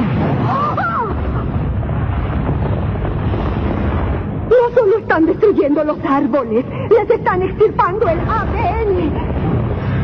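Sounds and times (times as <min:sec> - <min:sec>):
deep rumbling: 0:00.0 - 0:10.0.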